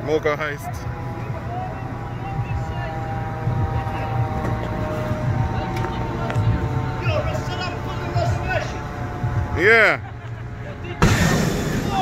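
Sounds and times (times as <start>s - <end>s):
diesel engine rumbling: 0.0s - 12.0s
steady high whine: 10.9s - 12.0s.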